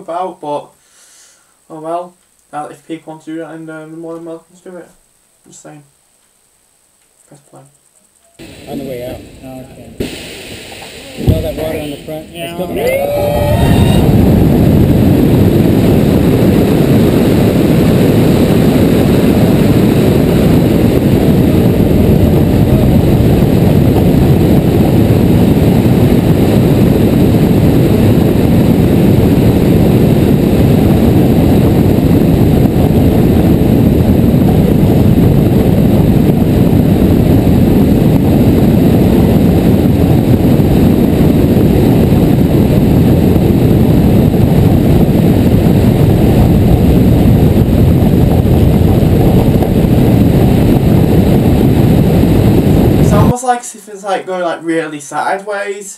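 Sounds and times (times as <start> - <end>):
wind buffeting microphone: 8.4 - 53.4.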